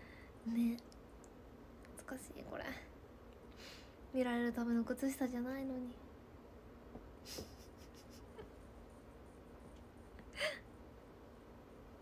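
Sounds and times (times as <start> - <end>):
faint hiss: 0.0 - 6.1, 6.8 - 12.0.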